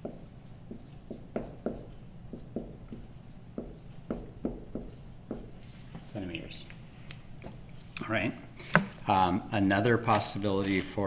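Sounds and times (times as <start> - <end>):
marker writing on whiteboard: 0.0 - 6.1.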